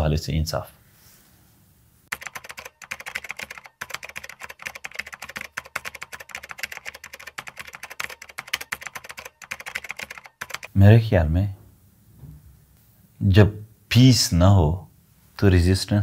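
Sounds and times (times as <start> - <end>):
rapid keyboard typing: 2.1 - 10.8.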